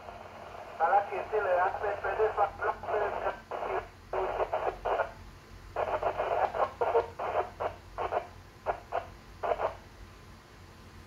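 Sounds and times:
voice over radio loudspeaker: 0.8 - 5.0.

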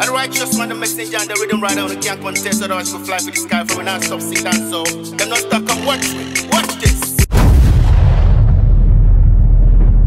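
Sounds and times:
loud boom with deep rumble: 7.3 - 10.0.

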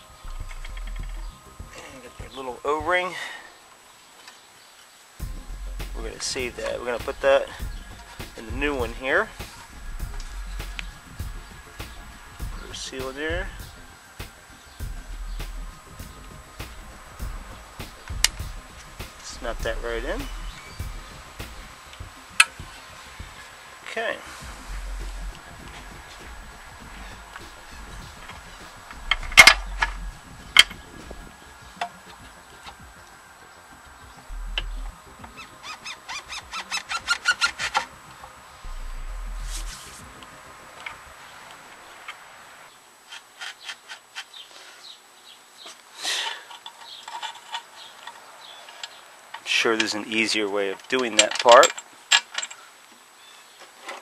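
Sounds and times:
scraping rustle: 39.0 - 40.2, 40.8 - 45.0, 45.6 - 52.7.

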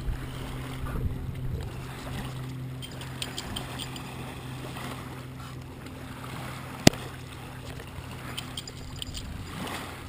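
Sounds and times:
steady low hum: 0.0 - 10.0
water lapping: 0.0 - 10.0.

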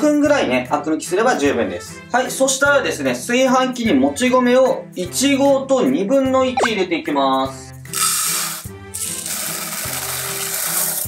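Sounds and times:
background music with low beat: 6.4 - 7.2
rice grains poured into pot: 8.0 - 11.0.

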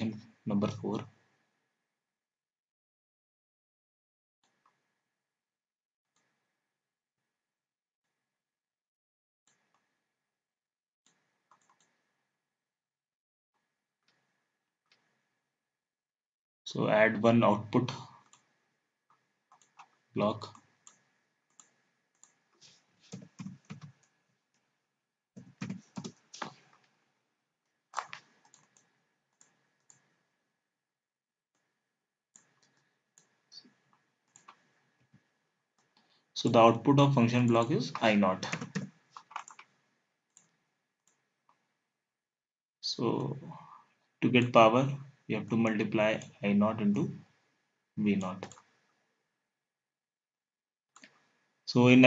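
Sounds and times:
computer mouse clicks: 11.1 - 12.2, 18.1 - 24.7, 25.4 - 27.0, 27.9 - 30.3, 32.4 - 35.2, 37.5 - 41.7, 48.2 - 48.7, 51.0 - 51.3.

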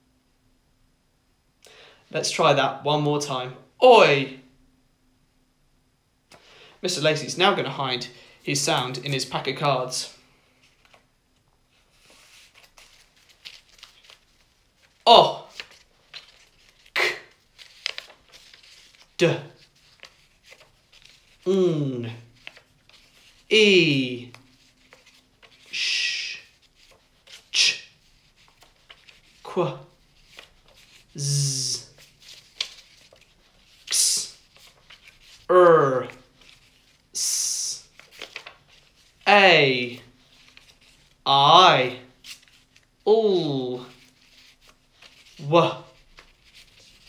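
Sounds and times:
man saying letter sounds: 2.1 - 4.5, 6.8 - 10.2, 15.1 - 15.6, 17.0 - 17.4, 19.2 - 19.6, 21.4 - 22.3, 23.5 - 24.4, 25.8 - 26.5, 27.6 - 27.9, 29.4 - 29.9, 31.2 - 31.9, 33.9 - 34.4, 35.5 - 36.2, 37.2 - 37.9, 39.2 - 40.1, 41.3 - 42.1, 43.1 - 44.0, 45.4 - 46.0
paper cards being shuffled: 10.6 - 11.1, 11.7 - 21.5, 22.2 - 23.6, 24.2 - 39.2, 39.8 - 41.2, 42.1 - 43.0, 43.9 - 47.0
flashcards clicking: 12.6 - 19.1, 38.0 - 38.8.

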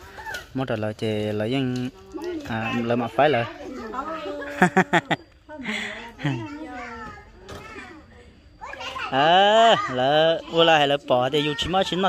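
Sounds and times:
people talking: 0.7 - 12.0
child's voice: 6.2 - 10.0.

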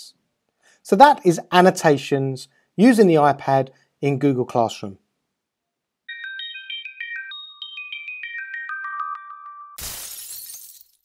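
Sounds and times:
chime-like electronic jingle: 6.1 - 10.4
shattering sound effect: 9.8 - 11.0.

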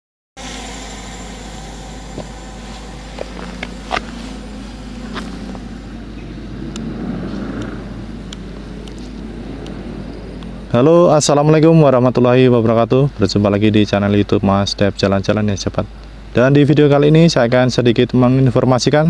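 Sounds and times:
road traffic rumble: 0.4 - 13.4.

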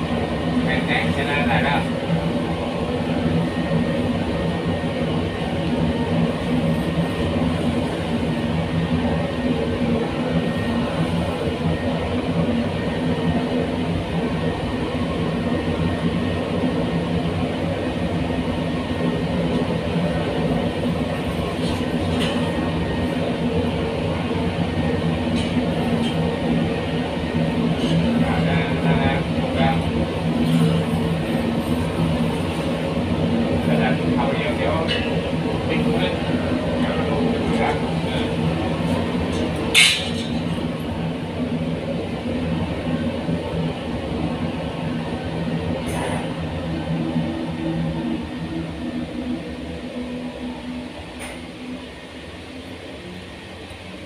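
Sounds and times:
furnace burner and blower roaring: 0.0 - 54.0.

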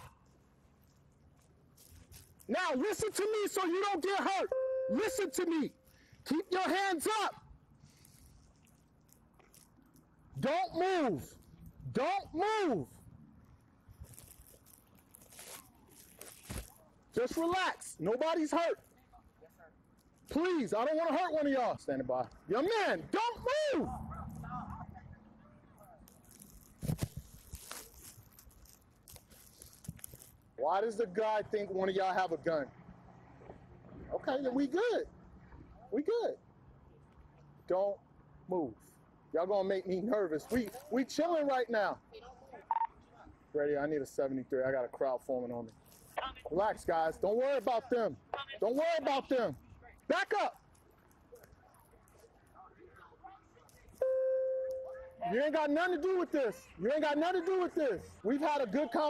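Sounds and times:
camera rubbing against clothing: 0.0 - 2.6, 25.9 - 30.6, 45.7 - 46.5
steady two-note tone: 4.5 - 5.4, 54.0 - 55.2.

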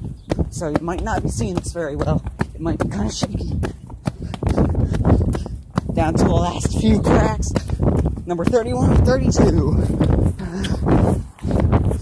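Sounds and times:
jogging footsteps on concrete: 0.0 - 12.0
wind rumbling on microphone: 0.0 - 12.0.

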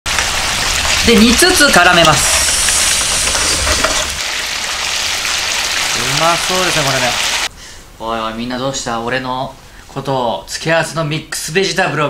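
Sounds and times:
meat sizzling in a frying pan: 0.1 - 7.5
sauce bubbling: 0.1 - 7.5.

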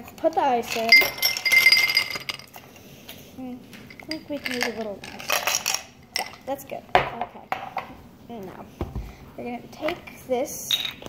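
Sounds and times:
ice cubes clattering in glass: 0.6 - 2.6, 4.0 - 6.4.

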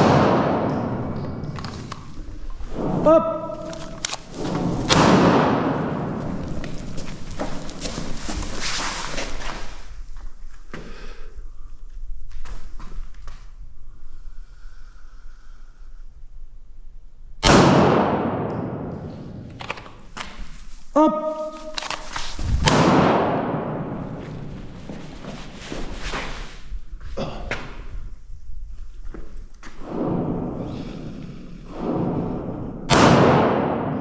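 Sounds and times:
echoing pistol shots: 0.0 - 1.2, 3.8 - 6.2, 17.4 - 19.5, 22.6 - 24.2, 31.7 - 34.0.

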